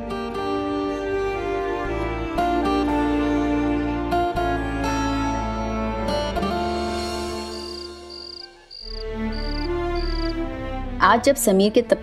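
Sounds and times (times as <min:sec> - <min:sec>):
soft background music: 0:00.0 - 0:12.0
cricket chirping: 0:07.0 - 0:10.4.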